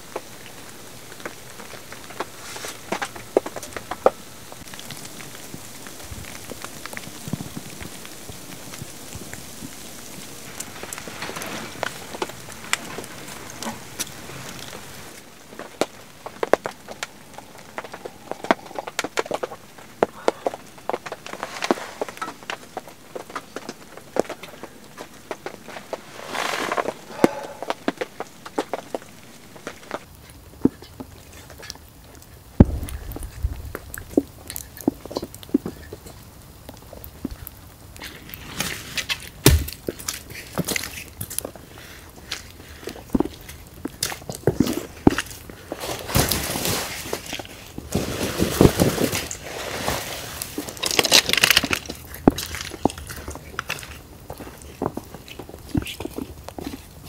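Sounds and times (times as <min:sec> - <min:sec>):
footsteps crunching through snow: 0:20.5 - 0:24.1, 0:25.0 - 0:29.1, 0:45.7 - 0:51.3
heavy thuds: 0:32.6 - 0:34.4.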